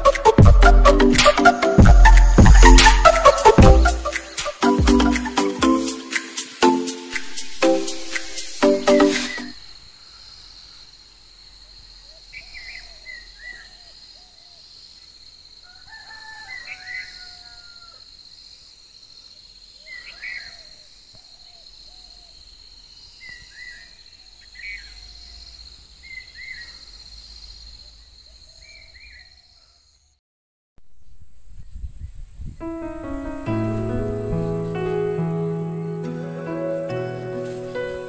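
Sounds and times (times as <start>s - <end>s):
roosters crowing: 2.1s - 4.4s, 15.6s - 18.1s.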